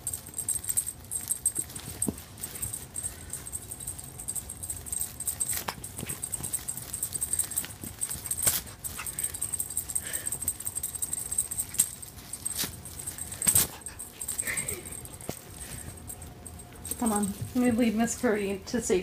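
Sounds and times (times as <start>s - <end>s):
cat panting: 2.4s - 16.2s.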